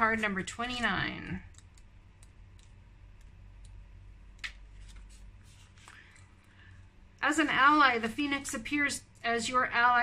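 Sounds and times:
faint low hum: 0.0s - 10.0s
pages rustling: 4.4s - 6.2s.

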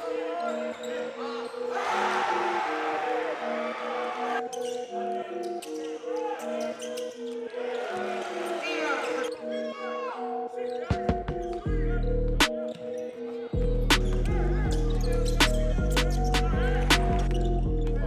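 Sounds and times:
background music: 0.0s - 18.0s
shoe squeals: 0.1s - 2.8s, 3.9s - 11.7s, 12.4s - 18.0s.

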